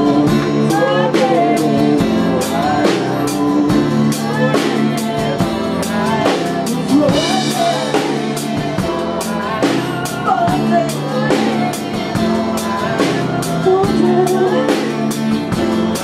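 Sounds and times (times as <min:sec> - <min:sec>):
drum kit steady beat: 0:00.0 - 0:16.0
rock band playing: 0:00.0 - 0:16.0.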